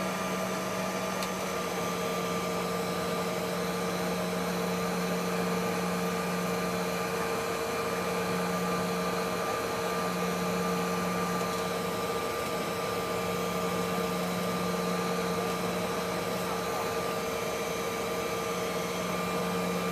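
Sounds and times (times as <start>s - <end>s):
jet engines whining in cabin: 0.0s - 19.9s.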